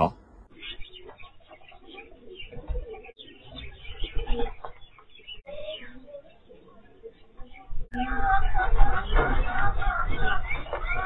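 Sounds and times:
pigeons cooing: 0.5 - 11.0.

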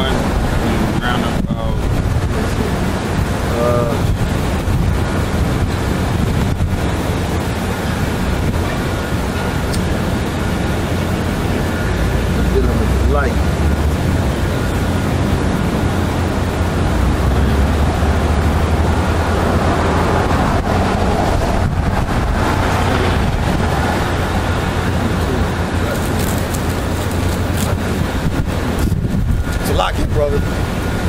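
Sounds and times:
street traffic rumble: 0.0 - 31.0
wind buffeting microphone: 0.0 - 31.0.

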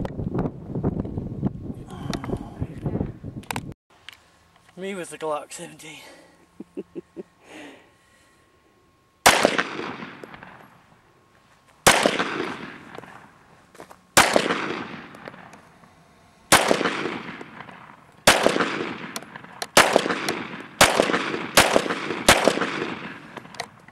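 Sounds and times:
pistol shots: 9.2 - 10.6, 11.8 - 13.2, 14.2 - 15.5, 16.5 - 23.6.

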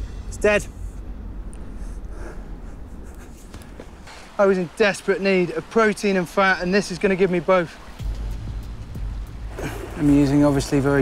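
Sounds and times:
low steady rumble: 0.0 - 4.1.

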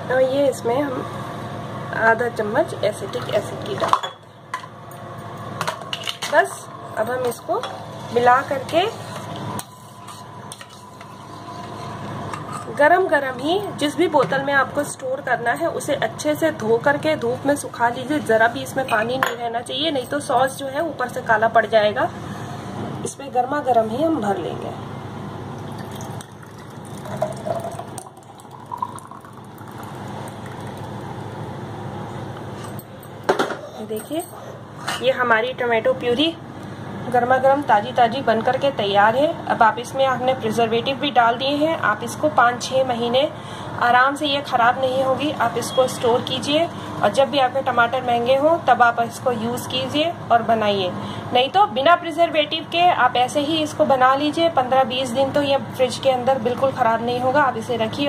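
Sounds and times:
steady background hum: 0.0 - 58.0.

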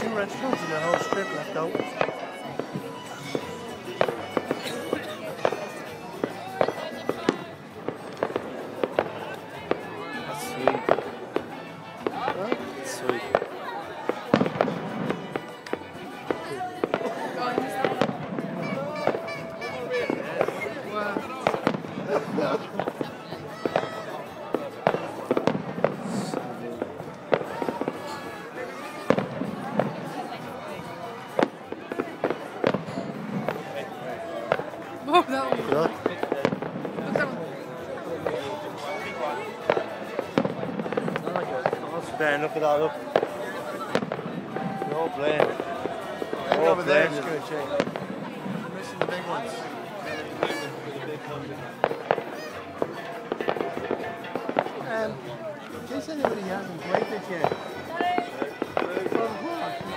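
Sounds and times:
fireworks bangs and crackles: 0.0 - 59.9
music: 0.0 - 59.9
people talking: 0.0 - 59.9.

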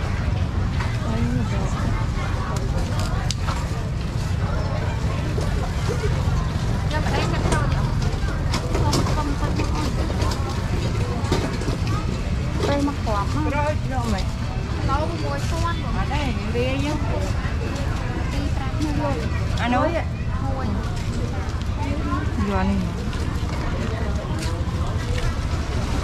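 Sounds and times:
people talking: 0.0 - 26.0.

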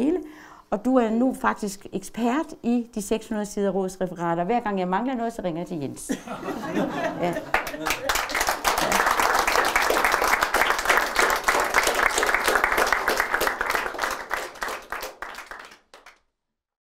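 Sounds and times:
audience applauding: 7.1 - 16.2.

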